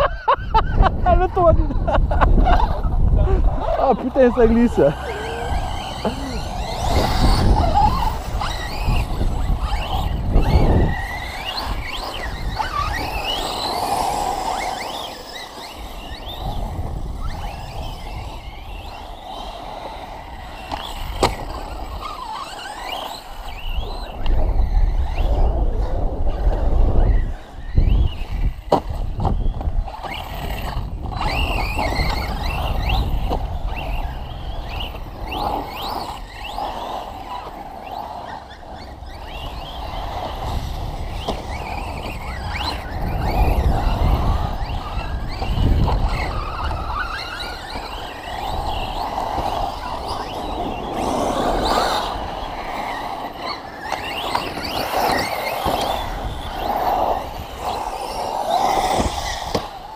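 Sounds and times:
electric motors whining: 0:00.0 - 0:59.9
wind on microphone: 0:00.0 - 0:59.9.

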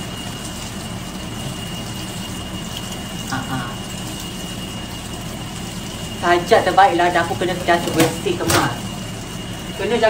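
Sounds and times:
dishes being washed: 0:00.0 - 0:10.0
water running from tap into sink: 0:00.0 - 0:10.0.

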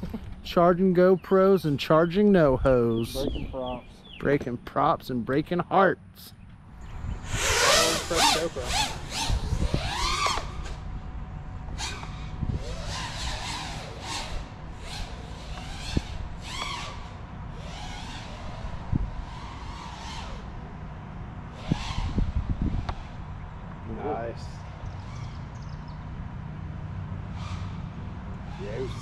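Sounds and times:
drone motors whining: 0:06.5 - 0:29.0.

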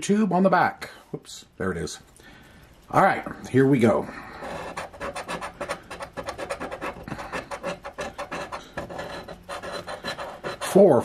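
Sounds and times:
coin scratching lottery ticket: 0:04.3 - 0:11.0.

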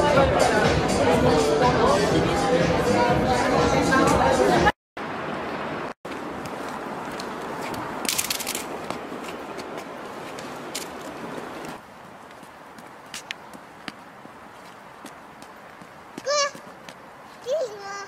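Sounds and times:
street noise hiss: 0:00.0 - 0:18.0.

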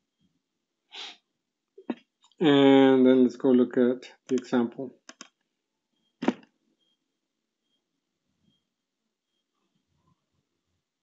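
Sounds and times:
man speaking: 0:02.4 - 0:04.9.

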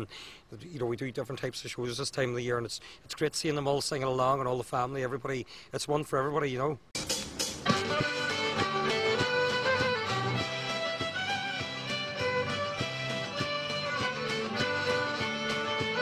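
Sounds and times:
steady beat: 0:07.0 - 0:16.0
fiddle playing lively melody: 0:07.6 - 0:16.0.

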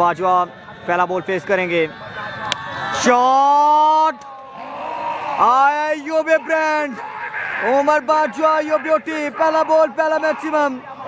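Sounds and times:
man shouting: 0:03.2 - 0:10.8.

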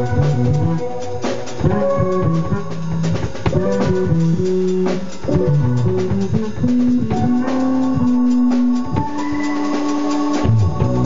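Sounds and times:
drum kit hits: 0:00.0 - 0:11.0
electric bass guitar: 0:00.0 - 0:11.0
keyboard playing: 0:00.0 - 0:11.0.

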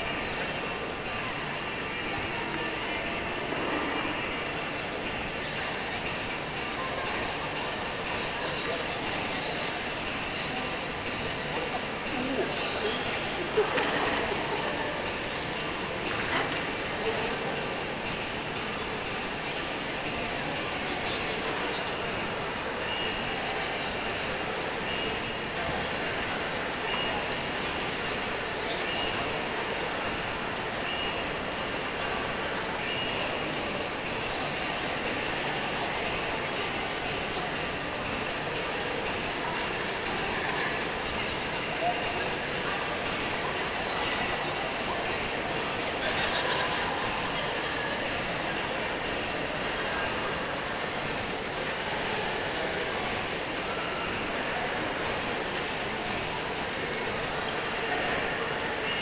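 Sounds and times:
indoor background rush: 0:00.0 - 0:59.0
murmur of distant voices: 0:00.0 - 0:59.0.

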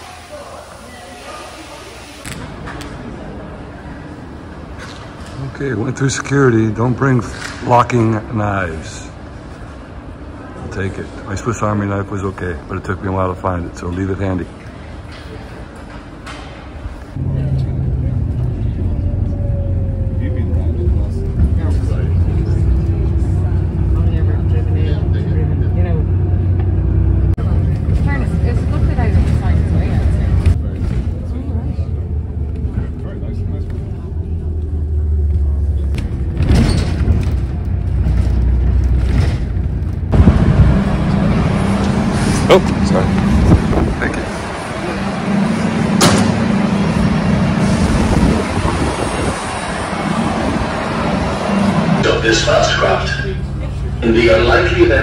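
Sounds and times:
bus engine droning: 0:00.0 - 0:55.0.

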